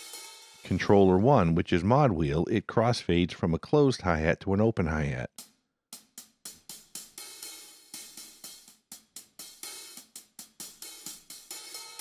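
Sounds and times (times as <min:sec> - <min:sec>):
hi-hat hits: 0:00.0 - 0:01.0, 0:05.3 - 0:12.0.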